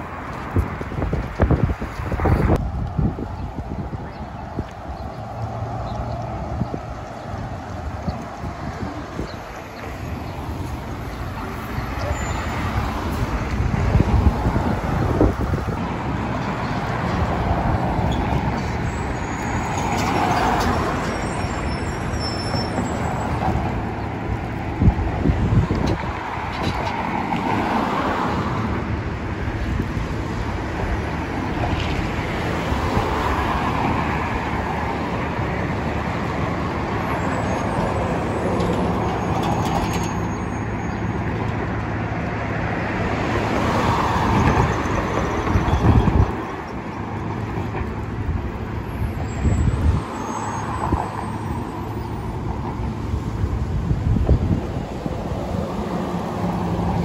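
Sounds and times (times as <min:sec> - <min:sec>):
cars passing close by: 0:00.0 - 0:57.0.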